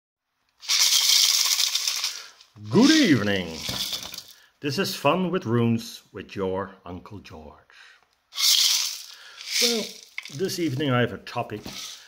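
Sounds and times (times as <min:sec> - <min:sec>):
maraca rattling: 0:00.6 - 0:04.4, 0:08.3 - 0:10.8, 0:11.6 - 0:12.0.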